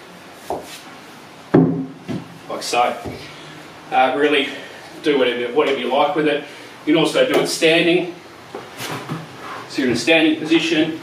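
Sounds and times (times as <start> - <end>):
kettlebell thud on wooden box: 1.5 - 2.3.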